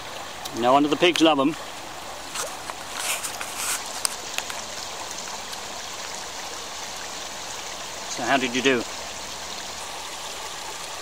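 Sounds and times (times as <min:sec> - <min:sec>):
stream flowing over stones: 0:00.0 - 0:11.0.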